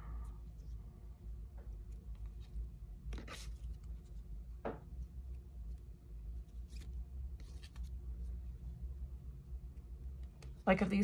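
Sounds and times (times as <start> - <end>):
low steady rumble: 0.0 - 11.0
cards sliding against each other: 1.9 - 4.2, 6.4 - 8.0.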